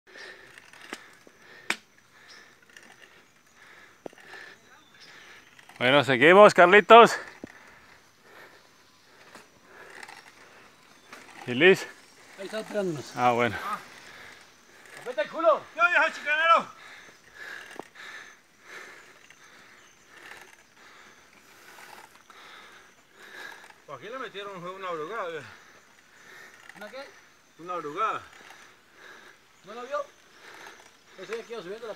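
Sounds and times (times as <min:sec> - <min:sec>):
heavy rapid breathing: 0:00.1 - 0:05.8, 0:07.0 - 0:23.9, 0:25.2 - 0:27.6, 0:28.2 - 0:31.9
bicycle drivetrain and tyre noise: 0:00.1 - 0:31.9.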